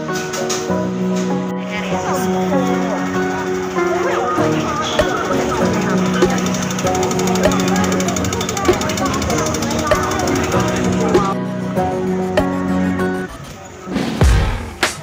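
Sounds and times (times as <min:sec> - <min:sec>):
background music with steady beat: 0:00.0 - 0:15.0
voice in music: 0:00.0 - 0:15.0.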